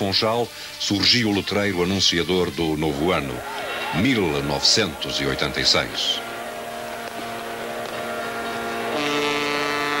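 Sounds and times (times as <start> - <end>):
drone of held tones: 3.2 - 10.0
held low tone with overtones: 3.4 - 9.0.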